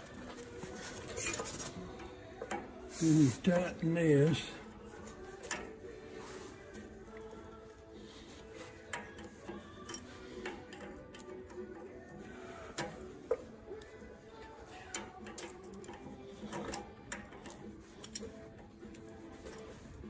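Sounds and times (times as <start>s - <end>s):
faint background music: 0.0s - 20.0s.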